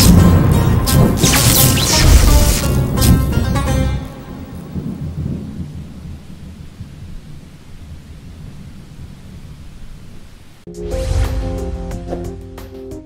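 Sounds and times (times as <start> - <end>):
thunder rumbling: 0.0 - 10.6
rain hiss: 4.2 - 10.7.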